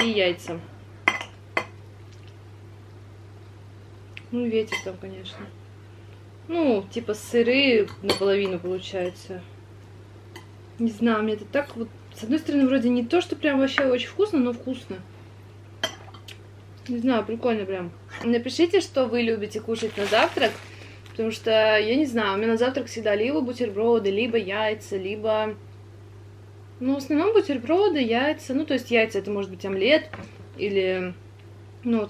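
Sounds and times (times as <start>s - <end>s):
faint low hum: 0.0s - 32.0s.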